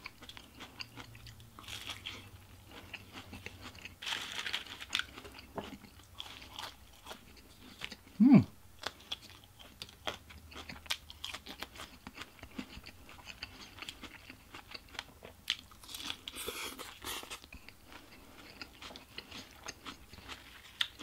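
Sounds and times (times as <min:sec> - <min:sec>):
person biting and chewing: 0:00.0 - 0:08.0.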